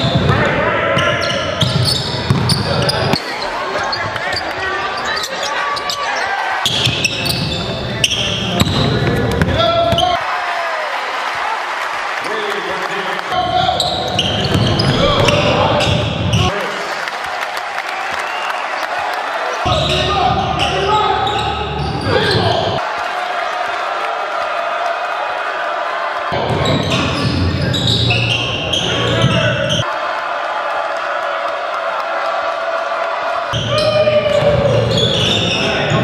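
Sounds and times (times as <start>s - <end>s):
voices and crowd noise: 0.0s - 36.0s.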